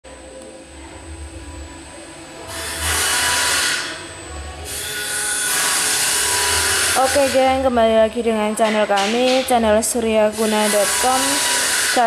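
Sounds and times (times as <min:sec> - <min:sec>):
machine whirring: 0:00.1 - 0:12.0.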